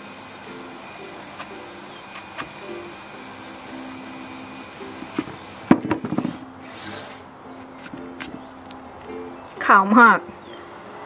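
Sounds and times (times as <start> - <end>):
soft plucked-string music: 0.0 - 11.0
knife trimming mushroom stem: 1.3 - 2.8.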